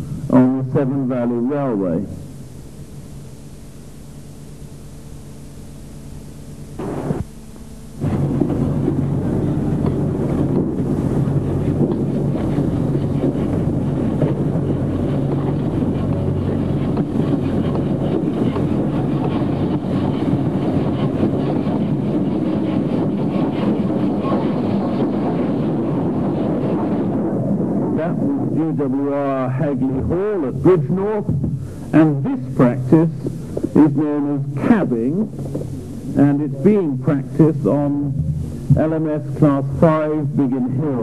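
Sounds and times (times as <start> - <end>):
low hum: 0.0 - 41.0
steam locomotive rumble and hiss: 7.9 - 41.0.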